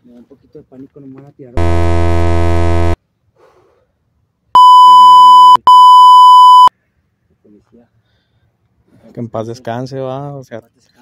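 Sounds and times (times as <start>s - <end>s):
speech: 0.0s - 1.6s, 9.0s - 11.0s
high-pitched censor bleeps: 1.6s - 3.0s, 4.6s - 6.7s
low buzzing sound effect: 1.6s - 3.0s.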